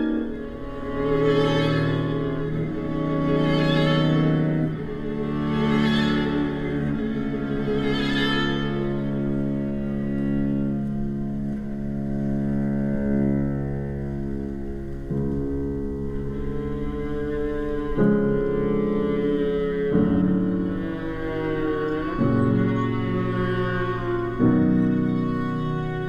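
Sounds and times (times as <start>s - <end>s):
string quartet bowing chords: 0.0s - 26.0s.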